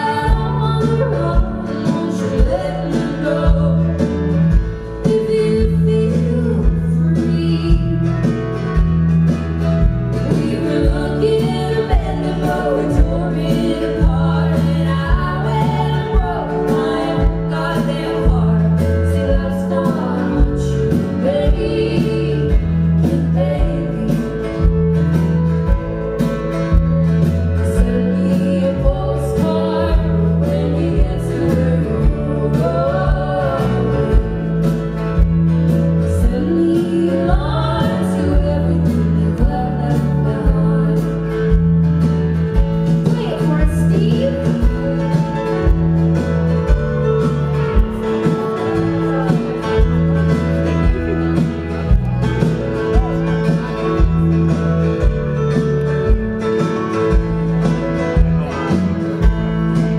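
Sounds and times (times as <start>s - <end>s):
woman singing: 0.0s - 8.9s, 10.1s - 25.0s, 27.5s - 35.3s, 35.9s - 41.8s, 42.8s - 51.6s
electric bass: 0.0s - 59.9s
guitar: 0.0s - 59.9s
steady drum beat: 41.5s - 59.9s.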